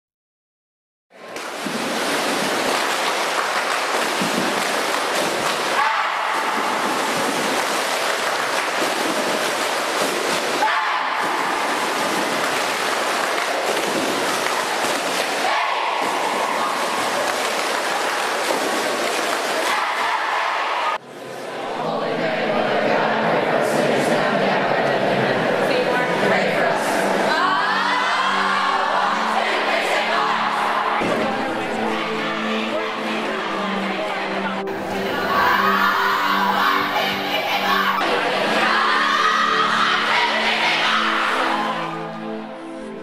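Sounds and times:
swimmers splashing water: 1.2 - 21.0, 34.7 - 38.9
people shouting: 5.7 - 7.9, 9.1 - 21.0, 34.7 - 41.9.

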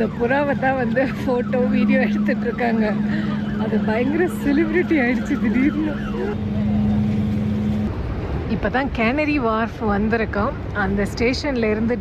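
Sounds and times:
steady engine hum: 0.0 - 11.0.

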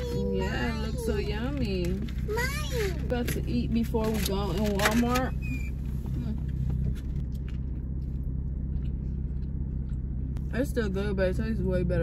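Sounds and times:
car engine idling: 0.0 - 12.0
plastic containers rustling: 0.6 - 5.3
chewing: 7.2 - 10.4.

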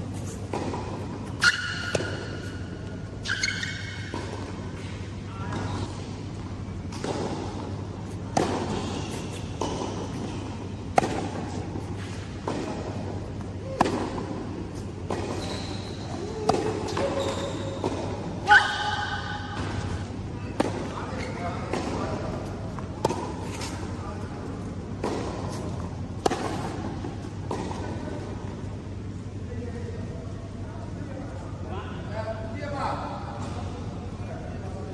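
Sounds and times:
steady low hum: 0.0 - 34.9
racket hitting ball: 0.2 - 6.0, 6.8 - 24.0, 25.0 - 27.9
ball bouncing: 0.5 - 2.6, 9.5 - 18.1.

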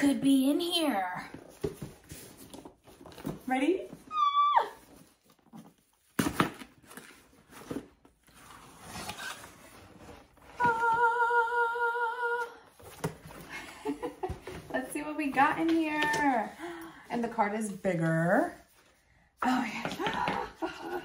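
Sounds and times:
cardboard and packaging rustling: 0.5 - 11.0, 12.7 - 19.1.

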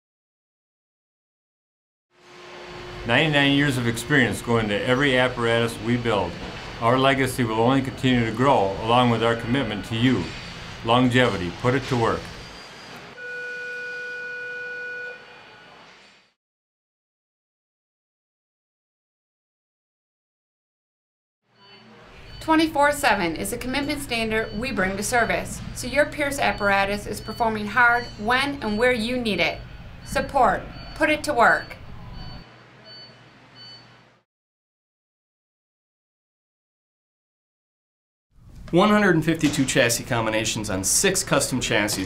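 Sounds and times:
low steady hum: 2.4 - 12.2
held steady tone: 12.4 - 15.7, 21.6 - 33.2.

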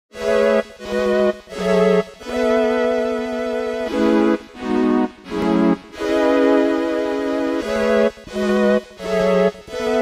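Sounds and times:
keyboard chords over fast pulse: 0.1 - 10.0.

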